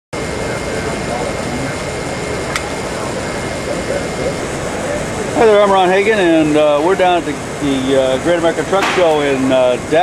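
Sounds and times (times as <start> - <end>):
exhibition hall rushing noise: 0.2 - 10.0
indistinct voices: 0.2 - 10.0.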